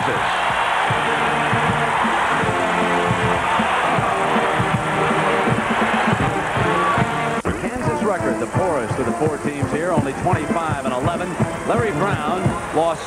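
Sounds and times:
arena crowd noise: 0:00.0 - 0:13.0
brass band playing held notes: 0:00.8 - 0:09.2.

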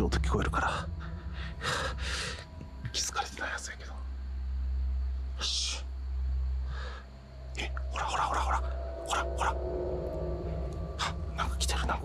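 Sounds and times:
steady low rumble: 0:00.0 - 0:12.0
man whispering: 0:01.6 - 0:04.1, 0:05.3 - 0:05.9, 0:07.5 - 0:09.7, 0:10.9 - 0:12.0.

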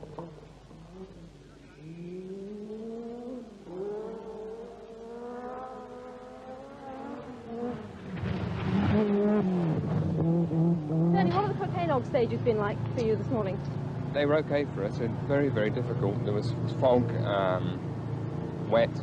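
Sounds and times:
rally car engine at full throttle: 0:00.0 - 0:19.0.

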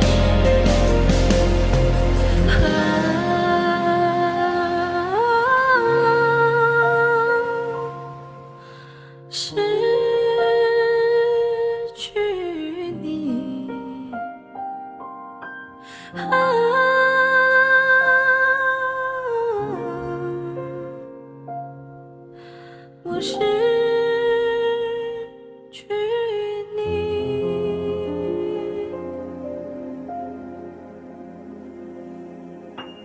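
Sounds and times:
hummed melody: 0:00.0 - 0:08.5
slow ballad music: 0:00.0 - 0:33.0.

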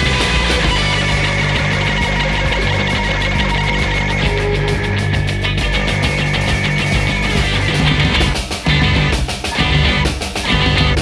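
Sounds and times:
bass guitar: 0:00.0 - 0:11.0
distorted electric guitar: 0:00.0 - 0:11.0
drums and cymbals: 0:00.0 - 0:11.0.

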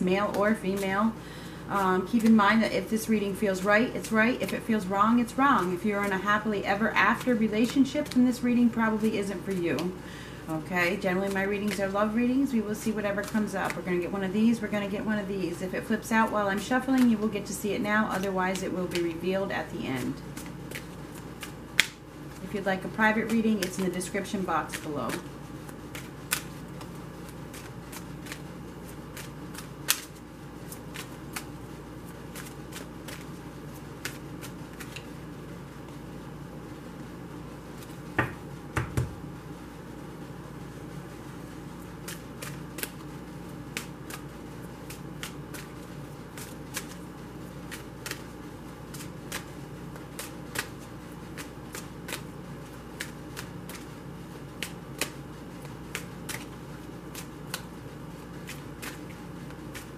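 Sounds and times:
cards being shuffled: 0:00.2 - 0:01.0, 0:02.0 - 0:09.9, 0:10.8 - 0:14.0, 0:16.5 - 0:17.5, 0:18.1 - 0:36.2, 0:41.2 - 0:59.9.

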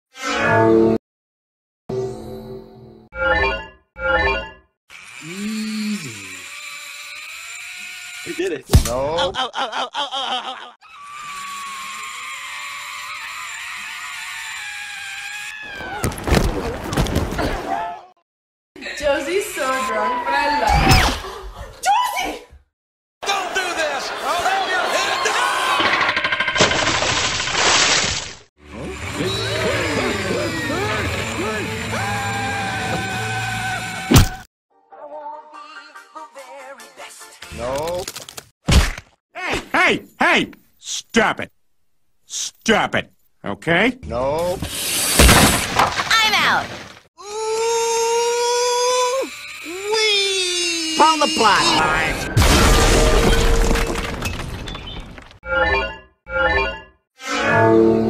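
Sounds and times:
people shouting and screaming: 0:10.8 - 0:16.2, 0:17.6 - 0:18.1, 0:23.2 - 0:26.0, 0:28.8 - 0:34.4, 0:47.2 - 0:52.2
zipline trolley whirring on cable: 0:11.0 - 0:15.5, 0:28.7 - 0:34.1, 0:48.2 - 0:50.8.

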